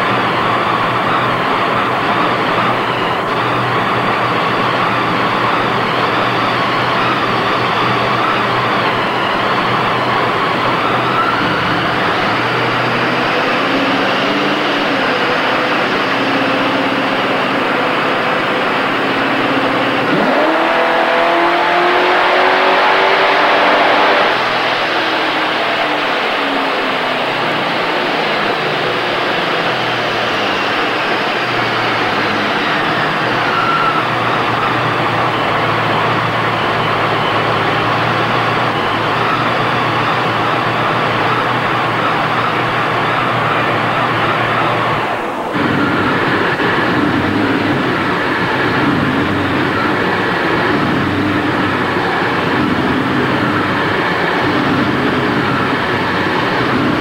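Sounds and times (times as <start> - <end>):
engine revving on a dyno: 0.0 - 57.0
high supercharger whine: 0.0 - 57.0.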